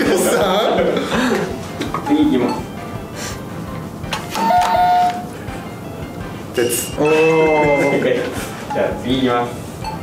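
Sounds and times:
quiz buzzer ding-dong chime: 4.4 - 5.3, 6.6 - 9.2.

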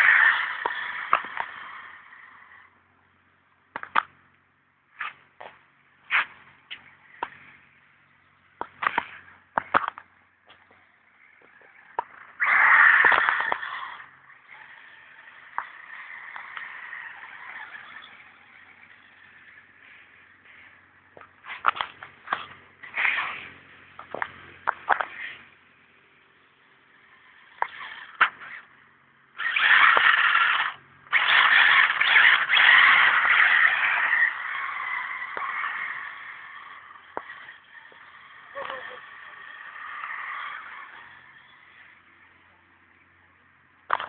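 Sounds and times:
buggy motor whining: 0.0 - 3.0, 6.1 - 44.0
tyres skidding on loose ground: 0.0 - 44.0.

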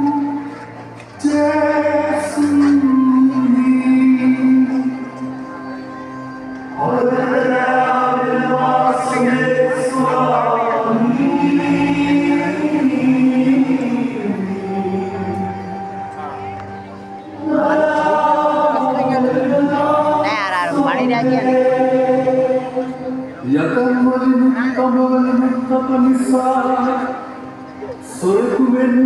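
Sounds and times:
chanted liturgical singing: 0.0 - 29.0.

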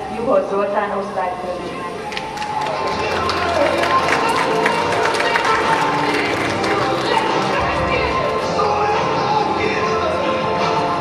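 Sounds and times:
crowd voices: 0.0 - 11.0
audience clapping: 2.0 - 8.3.

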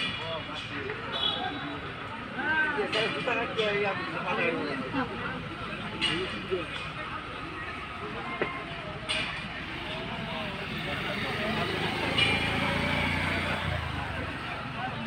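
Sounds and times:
murmur of indistinct voices: 0.0 - 15.0
vehicle engine rumble: 5.0 - 15.0.

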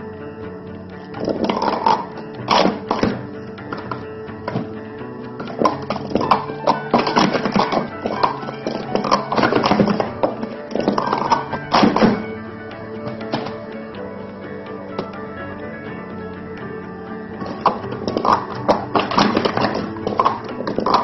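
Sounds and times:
guitar music: 0.0 - 21.0
plastic cups clattering: 1.2 - 4.7, 5.4 - 12.3, 17.4 - 21.0.

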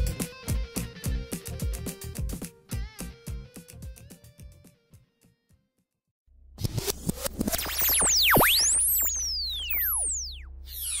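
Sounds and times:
synthesizer sweeps: 6.8 - 11.0.

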